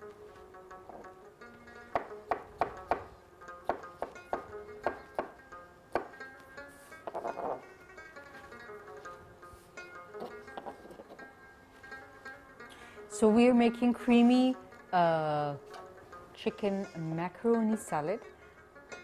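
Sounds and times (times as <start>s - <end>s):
plucked string music: 0.0s - 19.0s.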